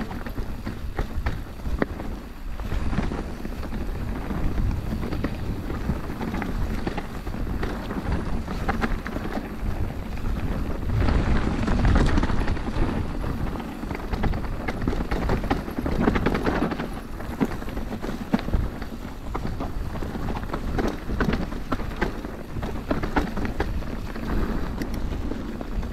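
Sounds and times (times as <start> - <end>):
bike tyres on dirt trail: 0.0 - 25.9
wind rumble on microphone: 0.0 - 25.9.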